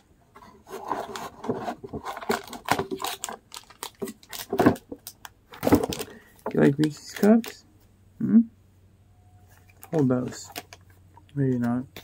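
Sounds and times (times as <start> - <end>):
cardboard box crinkling and rubbing: 0.4 - 4.8.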